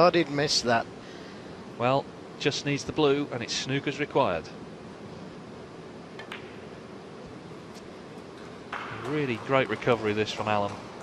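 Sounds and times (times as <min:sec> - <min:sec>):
balls clicking together: 0:06.2 - 0:06.7, 0:08.2 - 0:11.0
cue tip striking ball: 0:06.2 - 0:06.9, 0:08.3 - 0:11.0.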